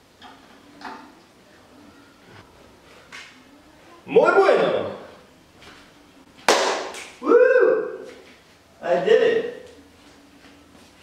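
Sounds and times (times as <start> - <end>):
sharp loud crack: 6.5 - 7.1.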